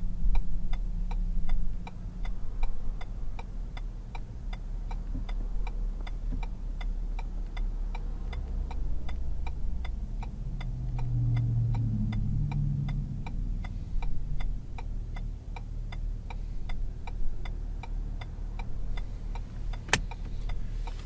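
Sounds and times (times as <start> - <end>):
deep rumble: 0.0 - 21.0
low engine hum: 0.0 - 21.0
turn signal ticking: 0.0 - 21.0.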